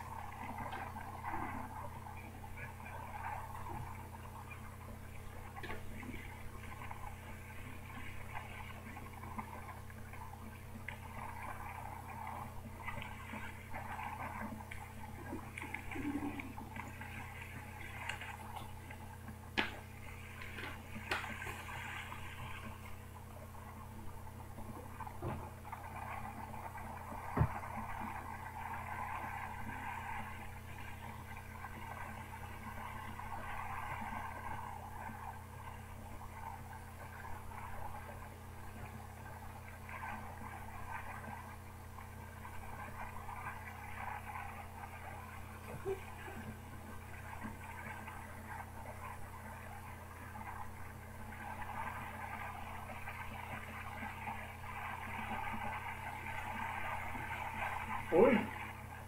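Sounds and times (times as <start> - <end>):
constant low hum: 0.0 - 59.0.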